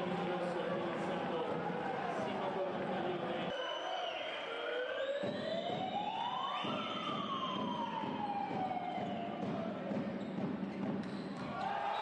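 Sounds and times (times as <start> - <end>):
crowd noise: 0.0 - 12.0
siren-like wail: 3.8 - 9.9.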